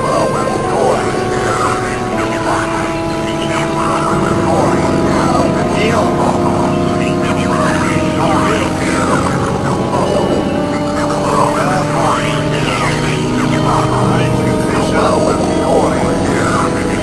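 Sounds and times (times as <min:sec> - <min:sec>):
steady drone tones: 0:00.0 - 0:17.0
swooping pitch sweeps: 0:00.0 - 0:17.0.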